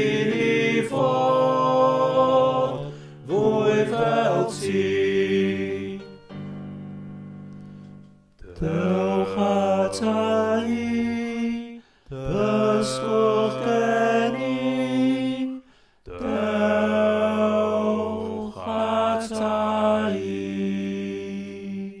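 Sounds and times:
choir singing sustained chords: 0.0 - 7.1, 8.4 - 22.0.

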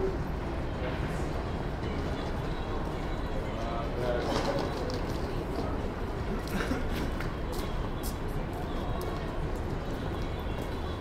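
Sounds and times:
low rumble of city traffic: 0.0 - 11.0.

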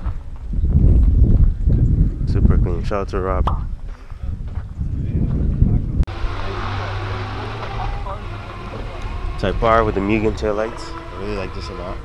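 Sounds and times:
crowd chatter: 5.4 - 12.0
car engine running: 6.1 - 12.0.

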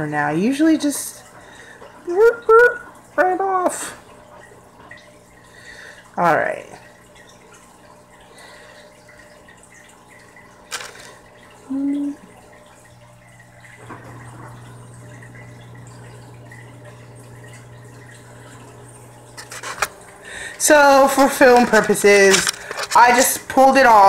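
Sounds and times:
aquarium filter hum: 0.0 - 24.0
faint water trickle: 0.0 - 24.0
person humming a note: 11.7 - 12.2.

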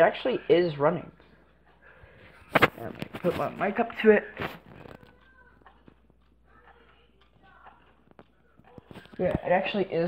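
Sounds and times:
clock ticking: 0.0 - 10.0.

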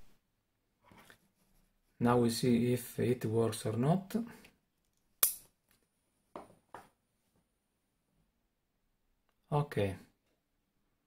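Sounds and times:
man speaking: 2.0 - 4.4, 9.5 - 10.1
sharp click: 5.2 - 5.5.

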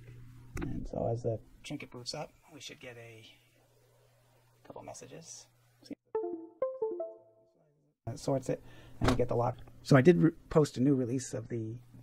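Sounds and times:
plucked note jingle: 6.1 - 7.7.

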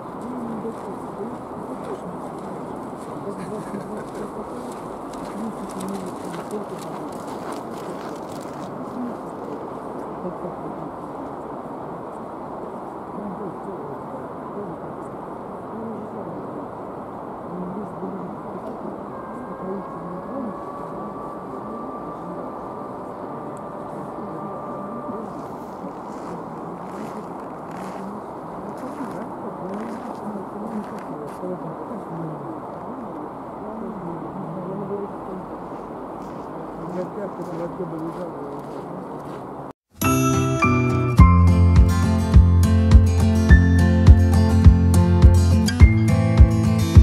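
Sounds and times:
voices talking: 0.0 - 39.2
thin steady whine: 10.0 - 36.2.

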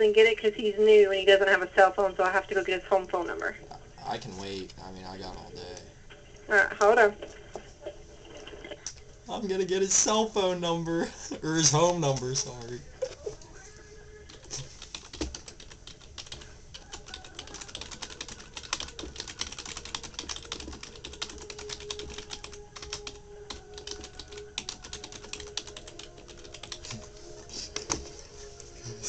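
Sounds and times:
typing on computer keyboard: 14.3 - 27.0.

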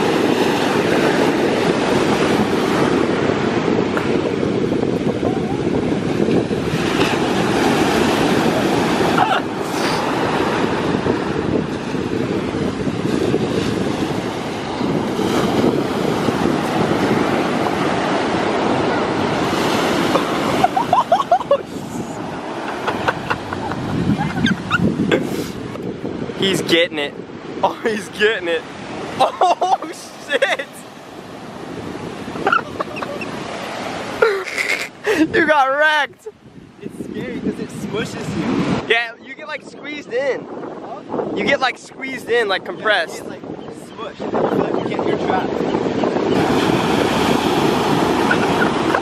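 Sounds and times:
ocean waves breaking: 0.0 - 49.0
wind buffeting microphone: 0.0 - 49.0.

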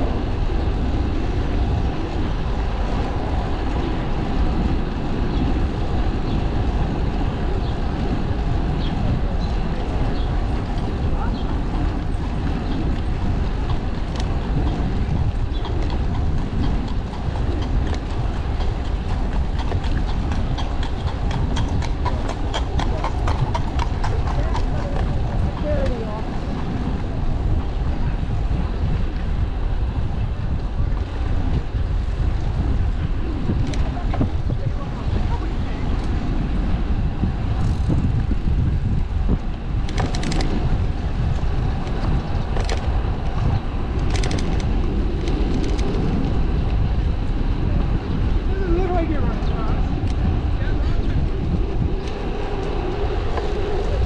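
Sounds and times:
horse hooves clip-clopping on pavement: 0.0 - 54.0
wind rumbling on microphone: 0.0 - 54.0
people's voices: 6.5 - 15.8, 20.4 - 31.8, 32.7 - 37.9, 47.5 - 54.0
sharp clicks: 44.0 - 46.0.

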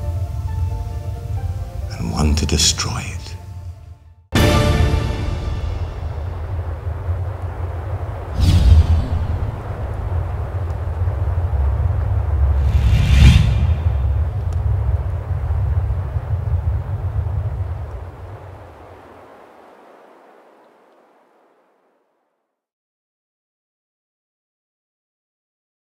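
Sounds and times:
low rumble: 0.0 - 2.6, 3.4 - 20.0
whoosh: 4.4 - 18.4.

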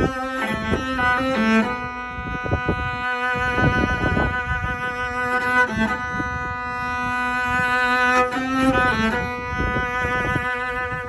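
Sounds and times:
cello sustained bowed note: 0.0 - 11.0.

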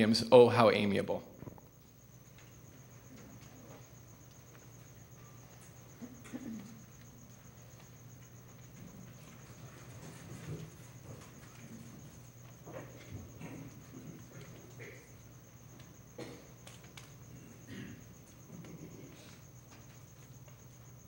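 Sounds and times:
faint high whine: 0.0 - 21.0
people rustling and knocking: 1.4 - 21.0.

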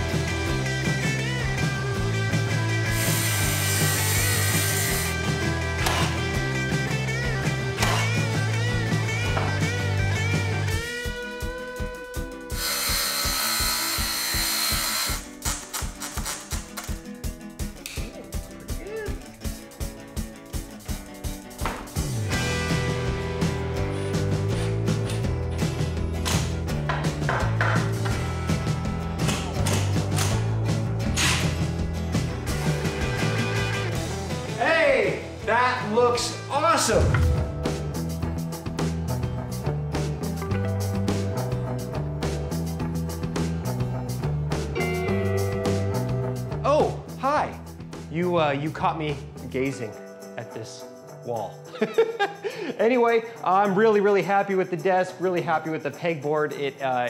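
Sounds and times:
rock music with guitar and bass: 0.0 - 52.7.

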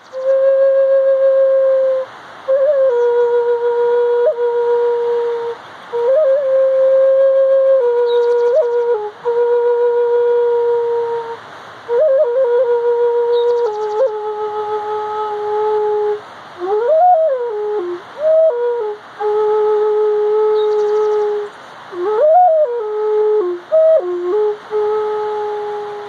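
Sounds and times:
flute playing slow melody: 0.0 - 26.0.

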